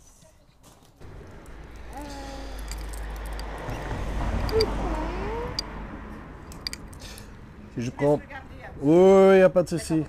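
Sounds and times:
wristwatch bracelets clinking: 2.5s - 3.7s, 4.4s - 4.8s, 6.4s - 7.2s.

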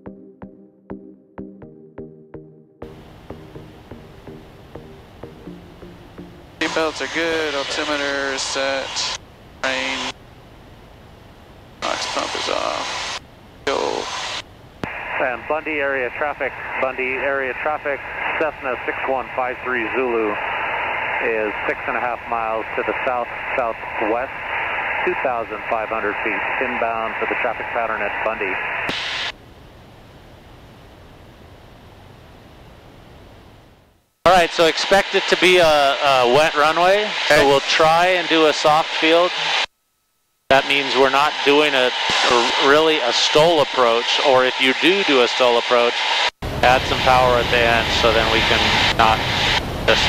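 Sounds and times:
aircraft engine through headset: 2.8s - 10.1s, 40.6s - 50.0s
hissy garbled radio transmission: 6.6s - 10.2s, 11.8s - 29.3s, 34.3s - 39.7s, 40.5s - 50.0s.

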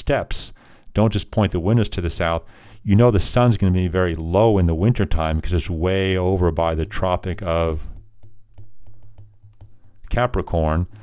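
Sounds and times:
stylus tapping on glass screen: 7.8s - 10.2s.

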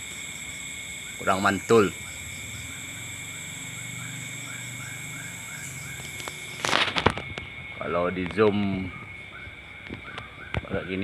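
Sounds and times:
high-pitched insect trills: 0.0s - 11.0s
short insect chirp: 0.0s - 11.0s.

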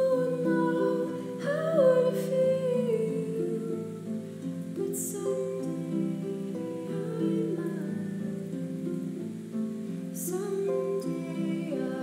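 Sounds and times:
woman singing wordless melody: 0.0s - 12.0s.

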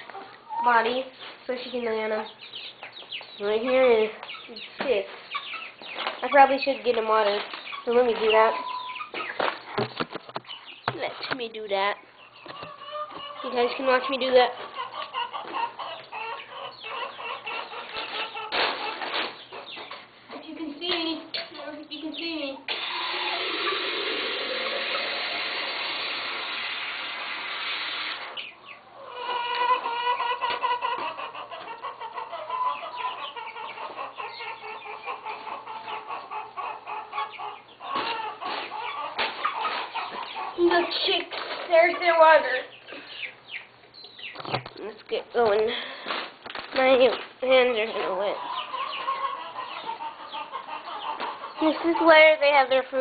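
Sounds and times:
chickens clucking: 0.0s - 53.0s.

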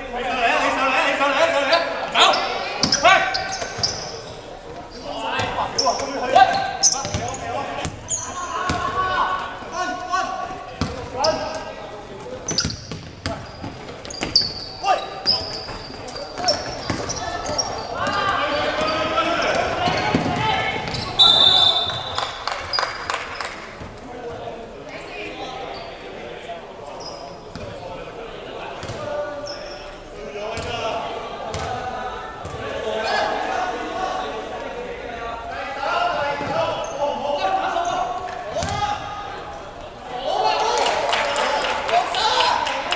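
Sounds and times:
players calling out: 0.0s - 26.1s
basketball bouncing on court: 6.6s - 8.0s, 8.7s - 9.0s, 10.8s - 11.2s, 12.4s - 14.6s, 16.4s - 21.2s, 28.8s - 29.0s, 30.6s - 30.8s, 31.5s - 31.8s.

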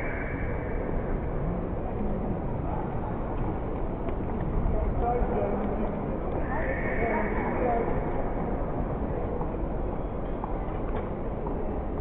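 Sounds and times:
distant indistinct voices: 0.0s - 3.4s, 4.6s - 10.7s
background rumble in a hall: 0.0s - 12.0s.

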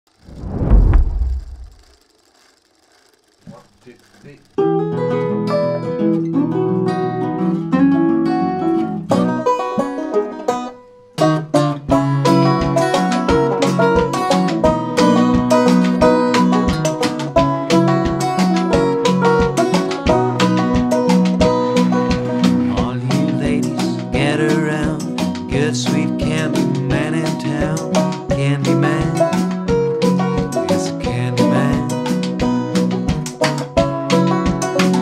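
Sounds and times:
low boom: 0.2s - 2.0s
acoustic country blues band: 4.6s - 35.0s.

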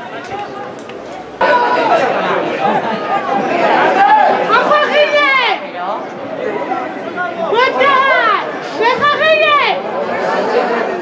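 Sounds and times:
people chatting: 0.0s - 11.0s.

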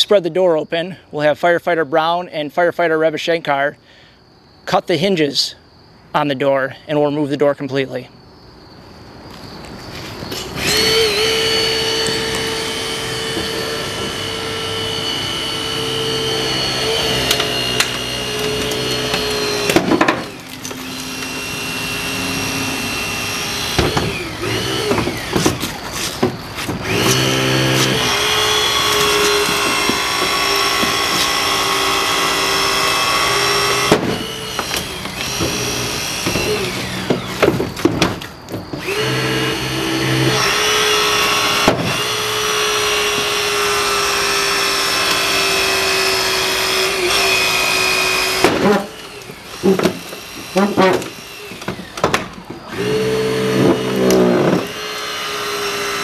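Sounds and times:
hydraulic cutter motor running: 10.4s - 37.9s, 38.8s - 56.0s.

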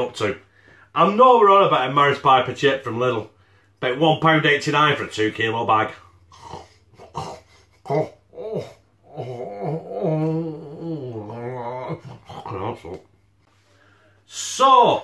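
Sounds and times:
man humming while chewing: 6.2s - 13.2s.

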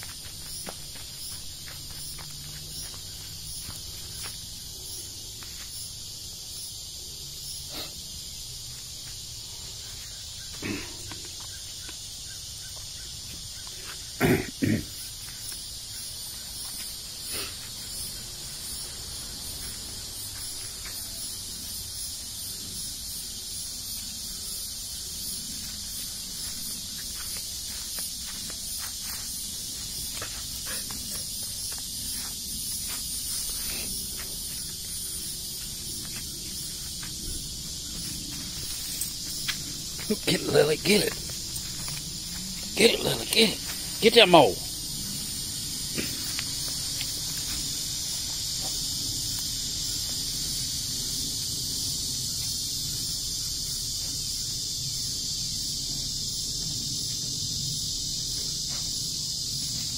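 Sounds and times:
crickets chirring: 0.0s - 59.9s.

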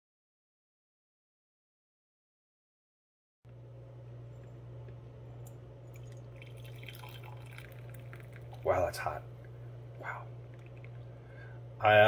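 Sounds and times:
steady low hum: 3.5s - 12.0s
coffee trickling into a mug: 5.8s - 9.1s, 10.5s - 11.0s.

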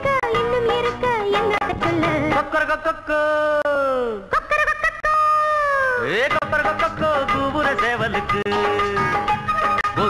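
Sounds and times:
instrumental accompaniment: 6.2s - 10.0s.

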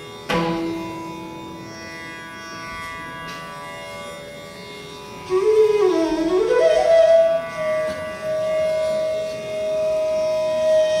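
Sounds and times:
bamboo flute long note: 5.3s - 11.0s.

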